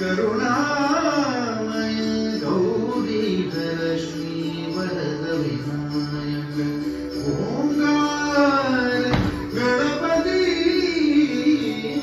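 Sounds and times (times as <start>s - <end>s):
devotional song: 0.0s - 12.0s.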